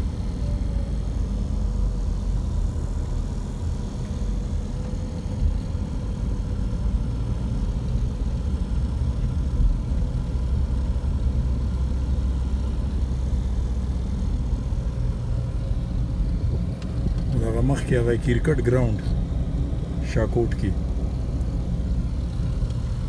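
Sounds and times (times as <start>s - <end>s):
car engine and tyre rumble: 0.0s - 23.0s.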